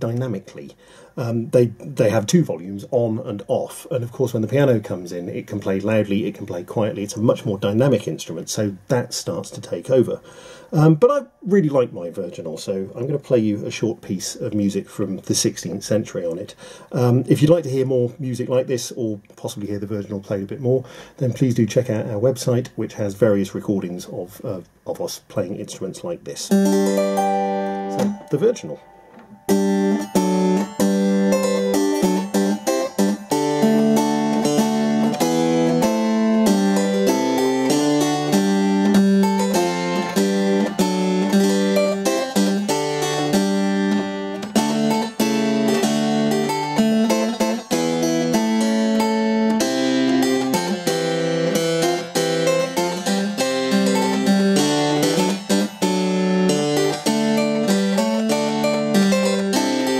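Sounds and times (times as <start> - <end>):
harpsichord playing quick runs: 26.6 - 59.9.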